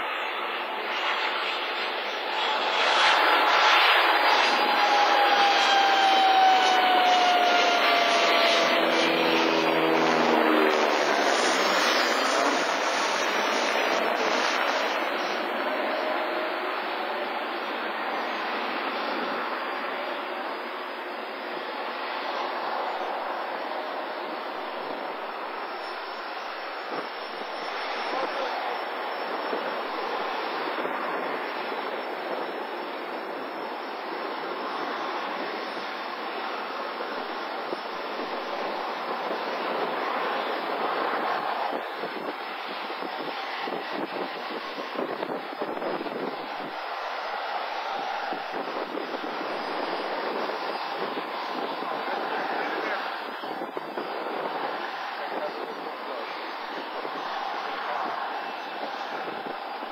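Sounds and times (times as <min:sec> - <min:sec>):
jet engines at takeoff: 0:00.0 - 0:59.9.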